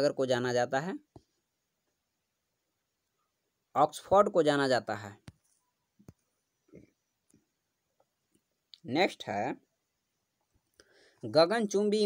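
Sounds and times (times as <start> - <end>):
man speaking: 3.8 - 5.3, 8.8 - 9.7, 11.2 - 12.0.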